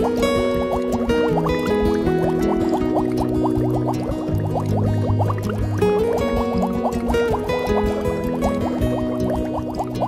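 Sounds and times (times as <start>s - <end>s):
quick rising bloops: 0.0s - 10.0s.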